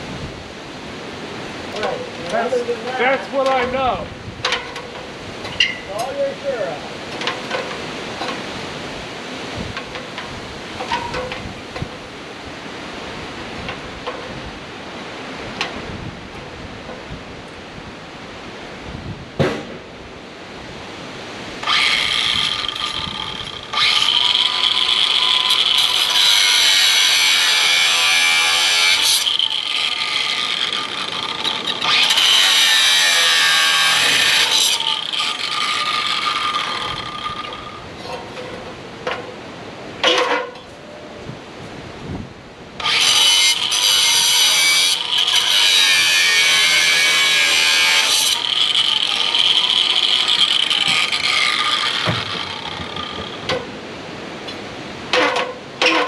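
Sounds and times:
wind buffeting microphone: 0.0 - 25.0, 40.7 - 42.8
angle grinder cutting wire: 21.6 - 38.2, 42.8 - 53.7.

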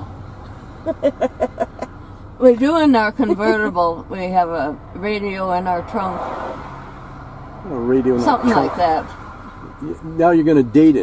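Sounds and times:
car interior hum: 0.0 - 11.0
quiet laughter: 0.8 - 2.0, 3.2 - 3.9.

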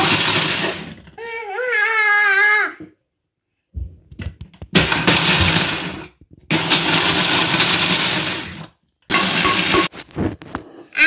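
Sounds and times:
electric mixer grinder grinding spices: 0.0 - 1.0, 4.8 - 9.9.

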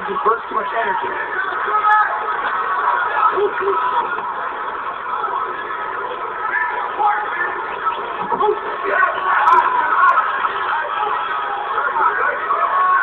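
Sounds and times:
din of spectators' voices: 0.0 - 13.0.

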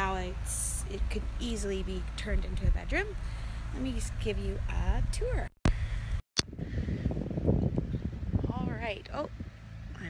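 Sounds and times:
wind noise on microphone: 0.0 - 10.0.

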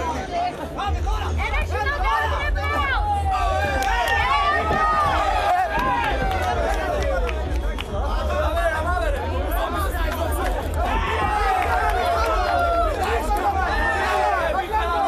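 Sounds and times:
crowd shouting and chattering: 0.0 - 15.0.

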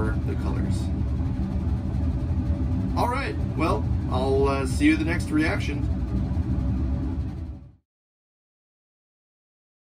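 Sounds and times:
low background rumble: 0.0 - 7.8.

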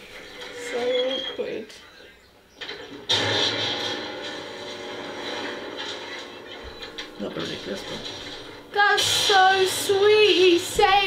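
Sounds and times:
piano crashing down: 3.0 - 9.8.

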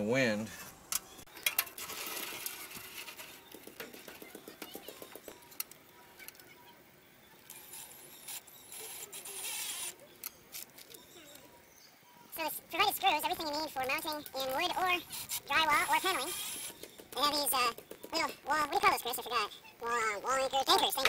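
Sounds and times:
cordless drill driving a screw: 7.5 - 9.9, 16.0 - 16.8.

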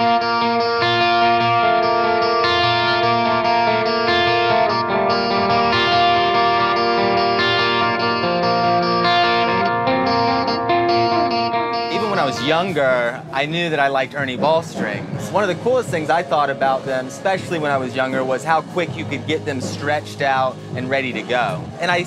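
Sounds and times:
electric guitar chords: 0.0 - 13.5.

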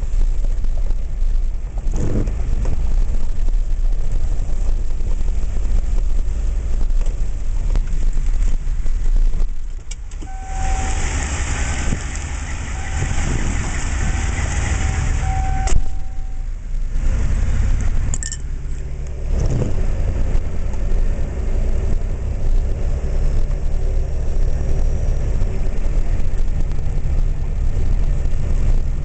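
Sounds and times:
vehicle engine and road noise: 0.0 - 29.0
faint high tone: 10.2 - 11.2, 14.8 - 16.6
loud hiss: 10.2 - 16.4.

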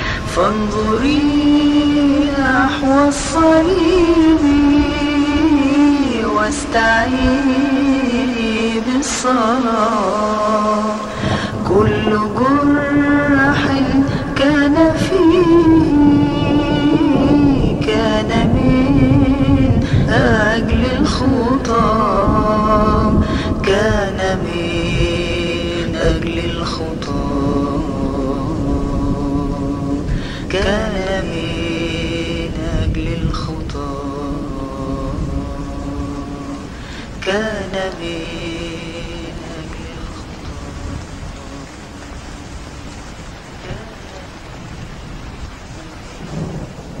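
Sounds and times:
person singing a hymn: 0.0 - 47.0
rain hissing: 0.0 - 47.0
thunder rumbling: 0.0 - 47.0.

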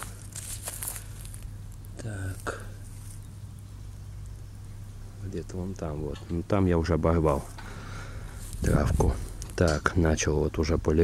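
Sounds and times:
light rustling and crackling: 0.0 - 10.3
low steady hum: 0.0 - 11.0.

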